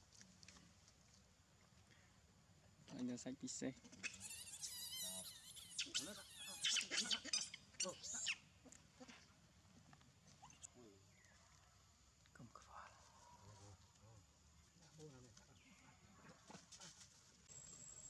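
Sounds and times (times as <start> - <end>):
infant monkey screaming: 3.8 - 8.4.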